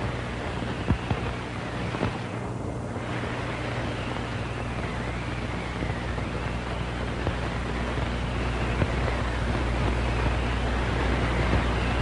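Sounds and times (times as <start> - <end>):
low hum: 0.0 - 12.0
steady rushing noise: 0.0 - 12.0.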